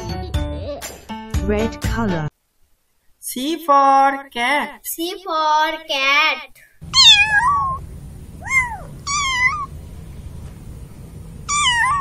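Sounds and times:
kittens mewing: 0:06.8 - 0:09.8, 0:11.4 - 0:12.0.

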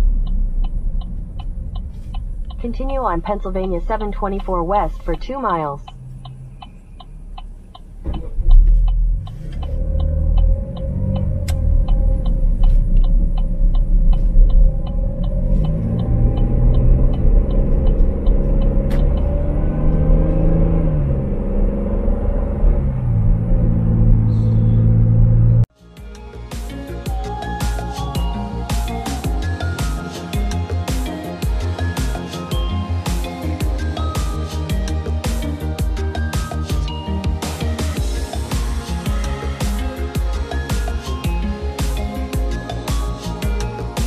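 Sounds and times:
car engine accelerating: 0:00.0 - 0:25.7
turn signal ticking: 0:00.0 - 0:25.7, 0:26.7 - 0:44.0
music: 0:25.7 - 0:44.0.

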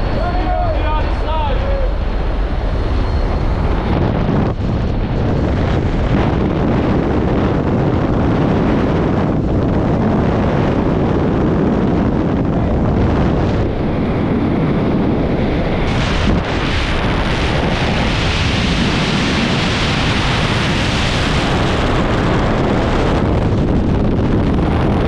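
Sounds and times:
wind rushing over microphone: 0:00.0 - 0:25.0.

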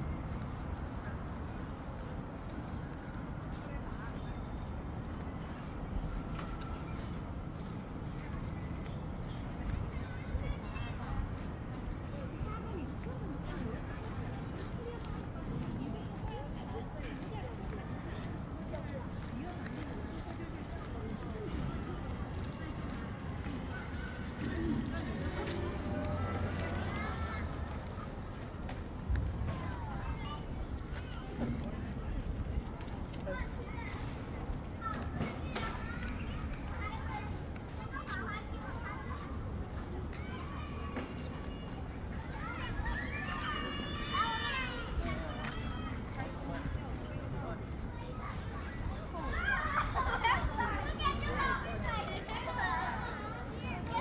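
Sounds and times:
children calling and chattering: 0:00.0 - 0:54.0
voices in background: 0:00.0 - 0:54.0
footsteps on pavement: 0:06.0 - 0:54.0.

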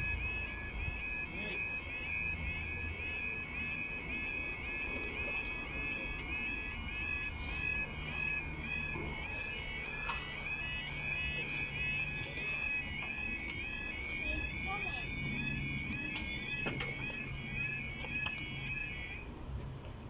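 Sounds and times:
level crossing two-tone alarm: 0:00.0 - 0:19.3.

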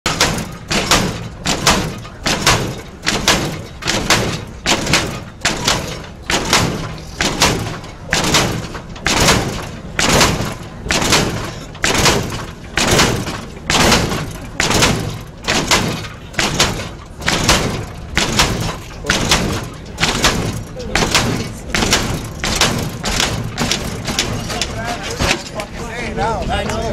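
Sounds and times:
crowd voices: 0:00.2 - 0:26.9.

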